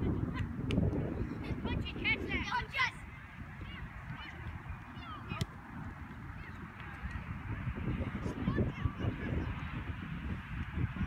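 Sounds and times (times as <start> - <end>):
low rumble on microphone: 3.0 - 11.0.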